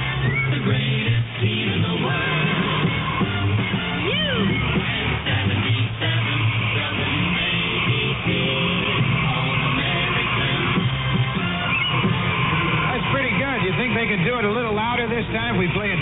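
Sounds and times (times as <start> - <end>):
crowd singing along: 0.0 - 13.1
radio jingle with music: 0.0 - 16.0.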